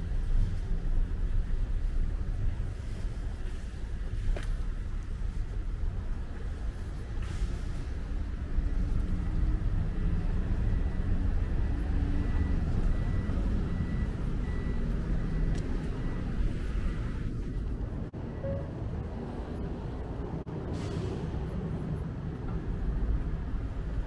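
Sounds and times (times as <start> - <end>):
traffic rumble: 0.0 - 24.0
faint high beep: 10.0 - 18.8.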